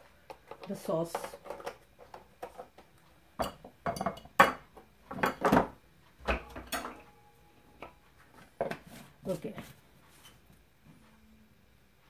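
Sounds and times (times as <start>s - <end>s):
kitchenware knocks and clinks: 3.4s - 7.1s.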